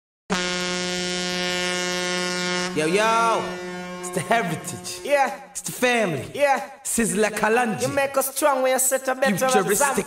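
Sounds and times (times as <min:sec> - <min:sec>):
buzzy low electronic tone: 0:00.3 - 0:05.1.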